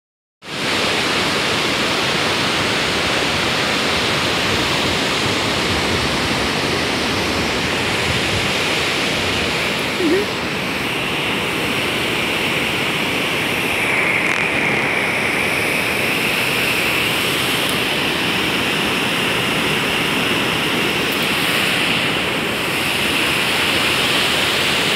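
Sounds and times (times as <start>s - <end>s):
waterfall rushing: 0.5s - 24.9s
white-water rapids: 0.5s - 24.9s.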